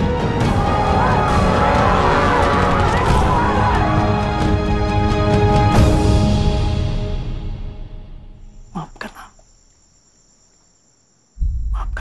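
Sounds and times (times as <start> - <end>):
faint high-pitched insect-like tone: 8.3 - 12.0.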